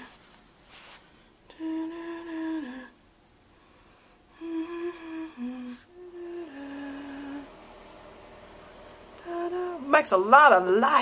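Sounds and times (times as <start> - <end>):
person humming slow tune: 1.5 - 3.0, 4.3 - 10.2.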